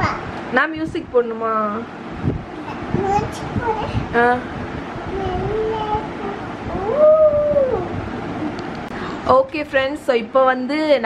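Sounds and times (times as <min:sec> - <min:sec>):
child howling: 0:06.6 - 0:08.0.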